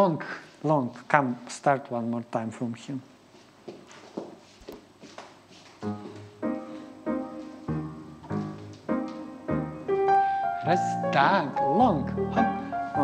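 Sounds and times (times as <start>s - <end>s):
piano chords: 5.8s - 13.0s.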